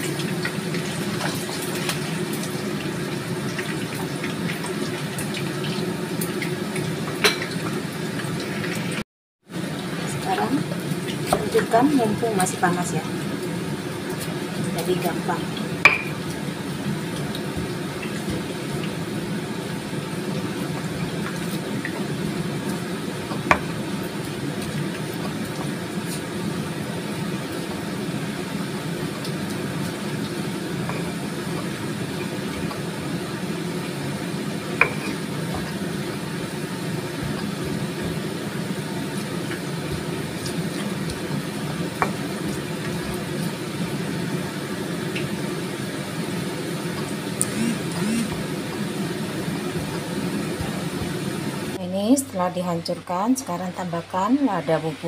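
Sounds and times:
steady low kitchen hum: 0.0 - 55.0
pestle crushing potatoes in mortar: 34.8 - 43.4.

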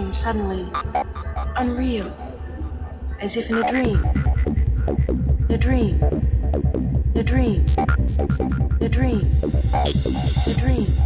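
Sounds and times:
goa trance track: 0.0 - 11.0.

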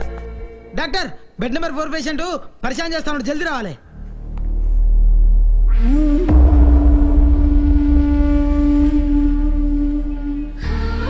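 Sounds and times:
deep low rumble: 3.9 - 10.6.

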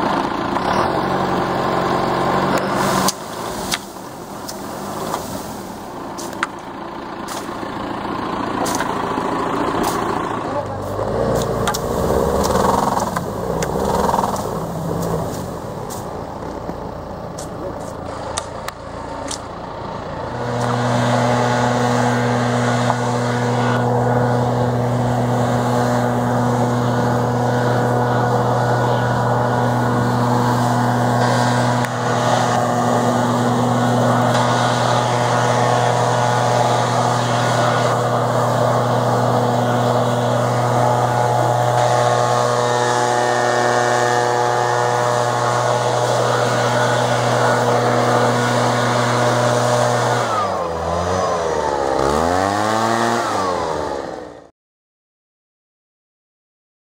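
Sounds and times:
backpack blower engine running: 0.0 - 16.7, 20.2 - 54.5.

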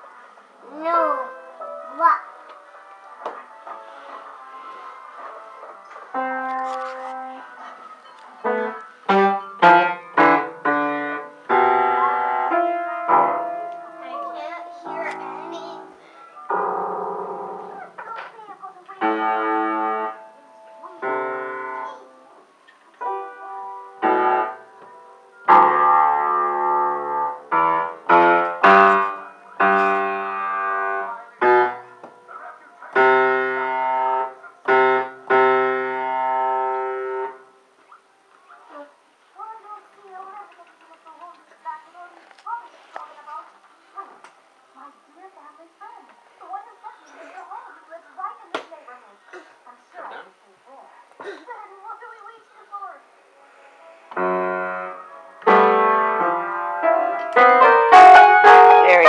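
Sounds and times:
piano keys banged: 5.2 - 7.5, 8.1 - 18.2, 19.0 - 22.0, 22.9 - 32.3, 32.9 - 37.5, 54.1 - 59.0.

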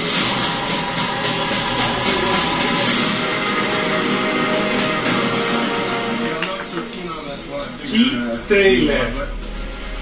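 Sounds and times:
film trailer music from television: 0.0 - 10.0.

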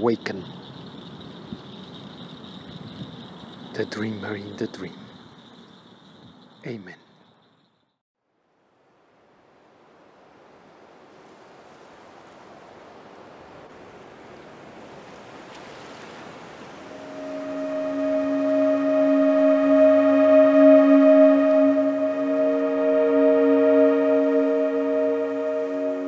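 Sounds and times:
sustained ringing tone: 16.9 - 26.0.

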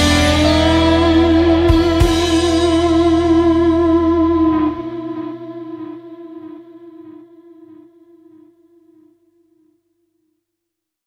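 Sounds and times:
low bass: 0.0 - 8.6
sustained electric guitar note: 0.0 - 8.6.

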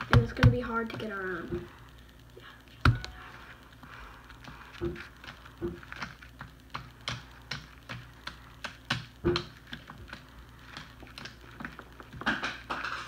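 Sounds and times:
plastic fidget spinner taps and clicks: 0.0 - 1.2, 4.8 - 13.0.

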